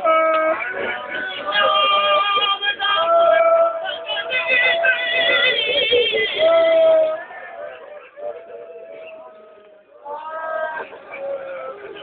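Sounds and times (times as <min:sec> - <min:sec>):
high voice singing a chant: 0:00.0 - 0:12.0.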